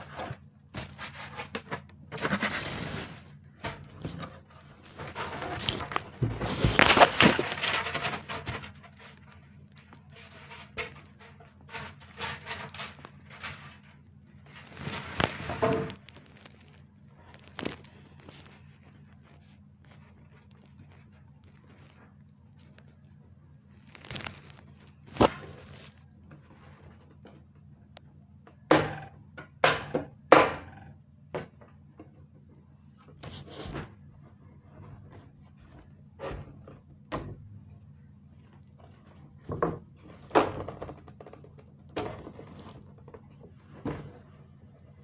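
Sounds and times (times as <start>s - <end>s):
rustling and scraping of drawing board: 0.0s - 23.1s, 23.7s - 27.7s, 31.7s - 37.0s, 38.3s - 45.0s.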